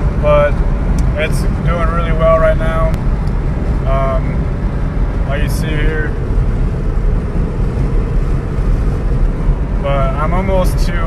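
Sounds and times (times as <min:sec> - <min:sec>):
road and tyre noise in car: 0:00.0 - 0:11.0.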